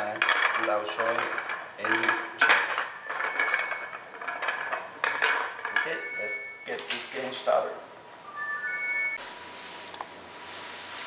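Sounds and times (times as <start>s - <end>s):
pool balls clacking: 0.0s - 7.2s.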